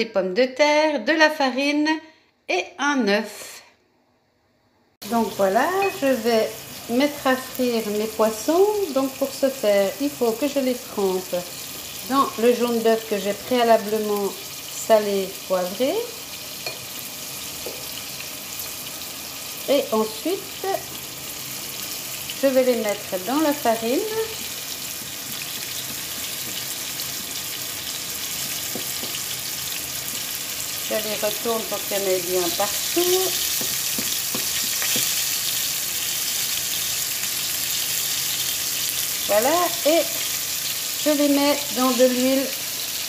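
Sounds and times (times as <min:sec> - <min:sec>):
fish frying in hot oil: 0:05.1 - 0:43.0.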